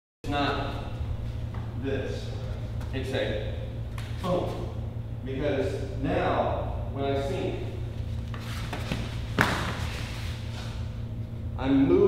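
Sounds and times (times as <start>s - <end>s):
light taps and scuffs on mats: 8.3s - 10.0s.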